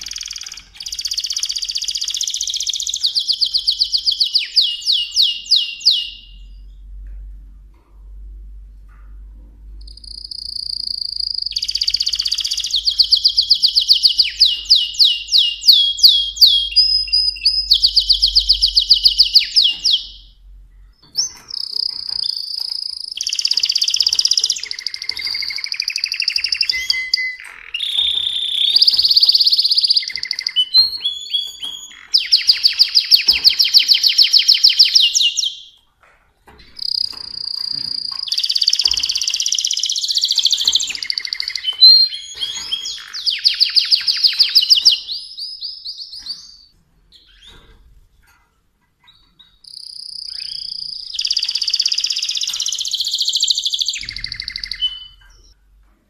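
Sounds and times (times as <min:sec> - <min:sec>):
canary singing trills: 0:00.0 - 0:07.0, 0:09.8 - 0:35.9, 0:36.5 - 0:47.9, 0:49.0 - 0:55.6.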